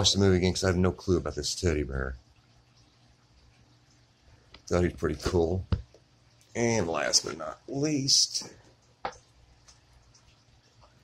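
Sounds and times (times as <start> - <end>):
man speaking: 0.0 - 2.2, 6.6 - 8.6.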